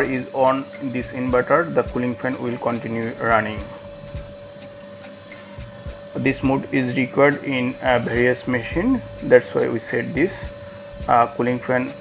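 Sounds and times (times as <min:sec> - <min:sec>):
cooling fan whirring: 0:00.0 - 0:12.0.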